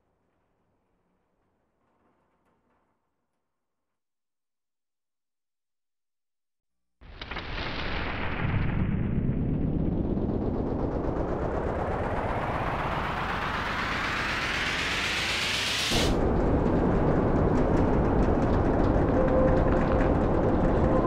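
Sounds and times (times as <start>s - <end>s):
low rough noise texture: 8.7s - 21.0s
rattling noise rising in pitch: 10.1s - 21.0s.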